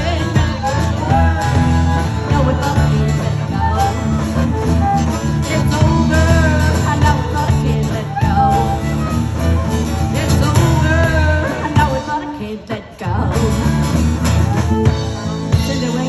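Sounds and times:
electric fiddle bowed notes: 0.0s - 12.6s, 13.4s - 16.0s
acoustic guitar: 0.0s - 16.0s
drum kit beat: 0.0s - 16.0s.

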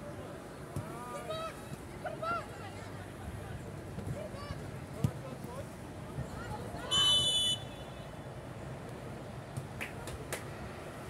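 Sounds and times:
referee's whistle blast: 6.9s - 7.8s.

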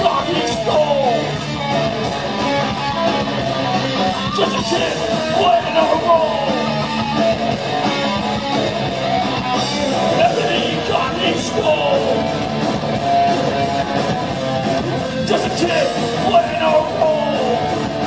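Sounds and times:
distorted electric guitar: 0.0s - 18.0s
live rock band playing: 0.0s - 18.0s.

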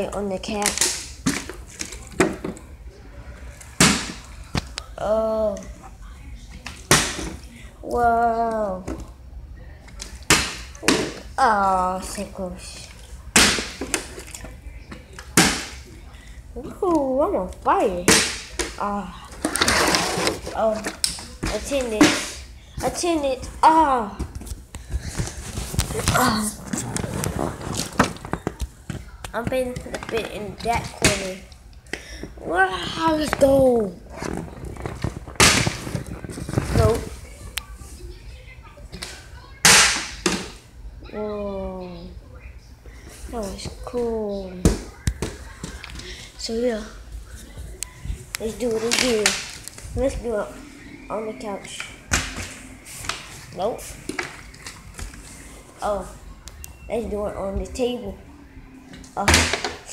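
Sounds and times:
plastic bottle smacking tile floor: 34.3s - 36.2s, 59.2s - 59.8s.

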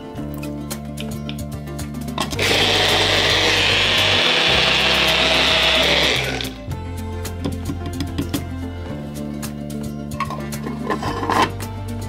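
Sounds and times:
blender running: 2.3s - 6.6s.

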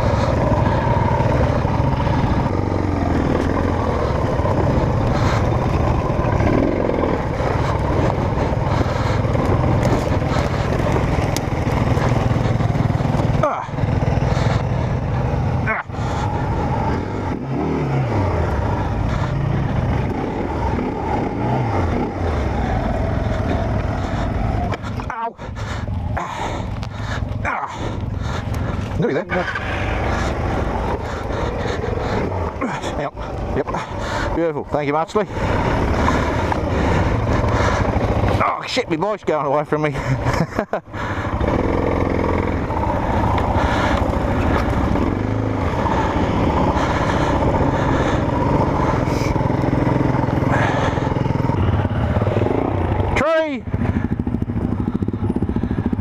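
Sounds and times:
motorcycle engine at low revs: 0.0s - 56.0s.

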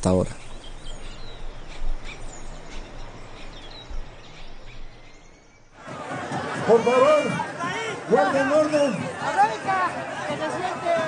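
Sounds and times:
bird chirps: 0.0s - 5.8s.

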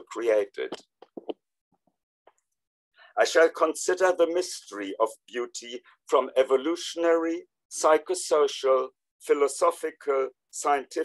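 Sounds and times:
man speaking: 0.0s - 0.8s, 3.2s - 11.0s.

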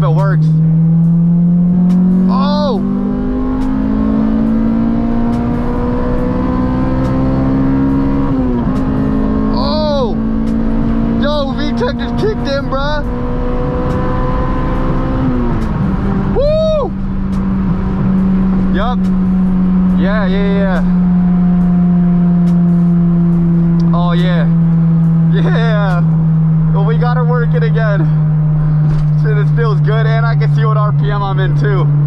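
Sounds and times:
car engine revving under full throttle: 0.0s - 32.0s
person whooping: 16.3s - 17.0s.

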